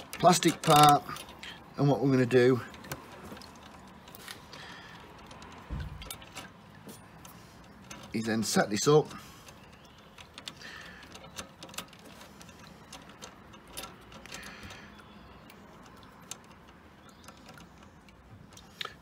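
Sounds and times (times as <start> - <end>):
small metallic clicks and ticks: 0.0 - 19.0.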